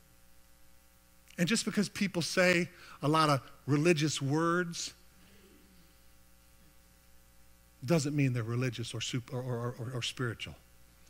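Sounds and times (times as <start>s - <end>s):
faint mains hum: 0.0s - 11.0s
man speaking: 1.4s - 5.0s, 7.8s - 10.6s.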